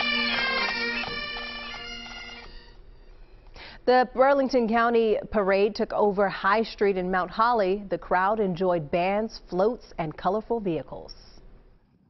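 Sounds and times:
bagpipes playing over drone: 0:00.0 - 0:03.3.

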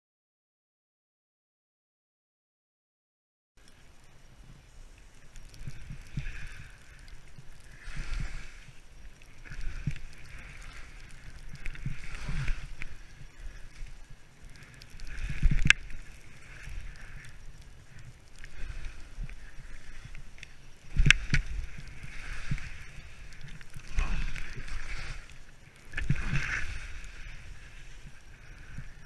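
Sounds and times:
skis swishing over snow: 0:07.7 - 0:14.4, 0:15.1 - 0:29.0.

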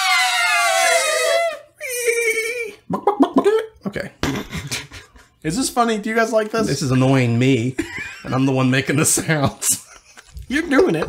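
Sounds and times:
man making wavering wail: 0:00.0 - 0:02.8.

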